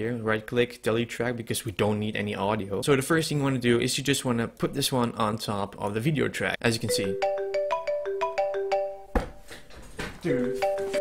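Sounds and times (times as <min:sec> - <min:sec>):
mobile phone ringtone: 0:06.9 - 0:09.1, 0:10.4 - 0:11.0.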